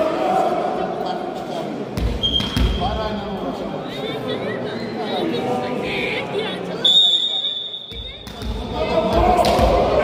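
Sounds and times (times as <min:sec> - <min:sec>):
referee's whistle: 0:02.2 - 0:02.8, 0:06.8 - 0:08.0.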